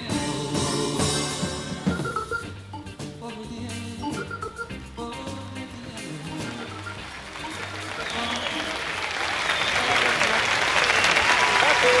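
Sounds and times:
band's held notes: 0.0 - 10.3
audience applauding: 6.1 - 12.0
voices in crowd: 6.4 - 12.0.

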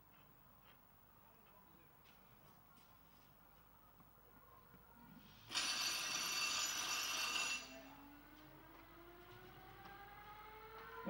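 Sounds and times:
loud electric bell ringing: 5.5 - 8.3
motor whine rising in pitch: 8.3 - 11.0.

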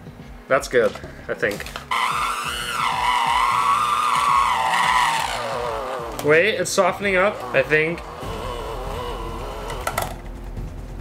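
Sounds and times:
electric hand mixer straining: 1.9 - 10.2.

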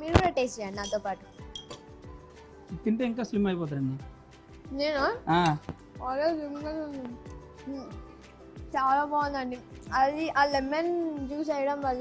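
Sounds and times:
background music: 0.0 - 12.0
metal utensil clinking on dish: 0.8 - 1.9.

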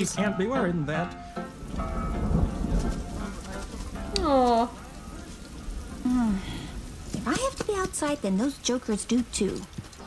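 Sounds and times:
faint held music notes: 0.0 - 10.0
rain falling: 0.0 - 10.0
low rumble of thunder: 1.5 - 9.8.

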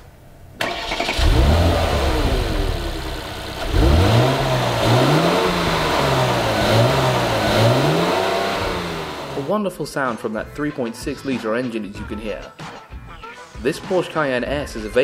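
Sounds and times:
car engine revving: 0.6 - 9.5
car engine starting and idling: 0.6 - 9.5.

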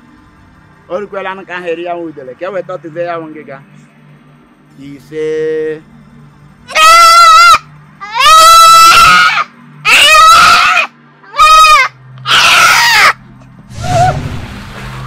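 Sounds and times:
high-pitched drawn-out cries: 6.7 - 14.4.

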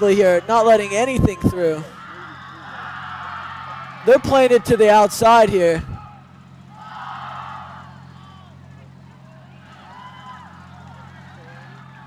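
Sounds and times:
distant voices: 0.0 - 12.0
low electrical hum: 0.0 - 12.0.

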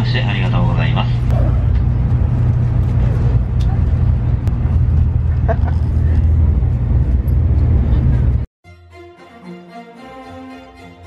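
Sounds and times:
train cabin low rumble: 0.0 - 8.5
string music: 8.6 - 11.0.

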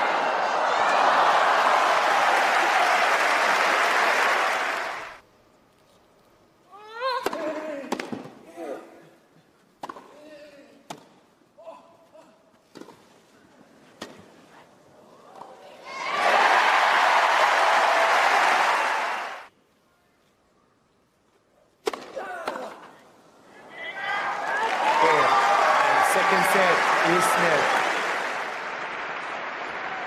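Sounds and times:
crowd applauding: 0.0 - 5.2, 16.0 - 19.5, 23.8 - 30.0.

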